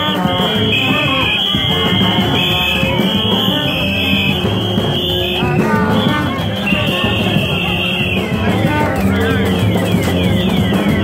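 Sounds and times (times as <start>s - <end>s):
held horn tones: 0.0s - 11.0s
steady drum beat: 0.0s - 11.0s.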